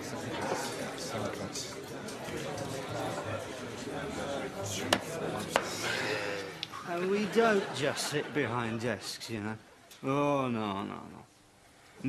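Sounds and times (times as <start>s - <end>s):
murmur of crowd: 0.0s - 9.9s.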